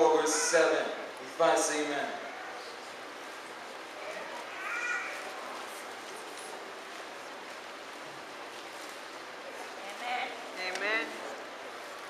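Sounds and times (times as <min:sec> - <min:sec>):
faint high-pitched voice calling: 0:04.0 - 0:05.6.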